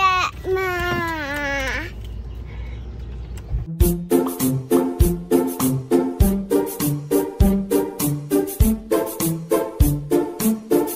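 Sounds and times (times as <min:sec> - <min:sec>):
low steady background rumble: 0:00.0 - 0:03.7
plucked string music: 0:03.7 - 0:10.9.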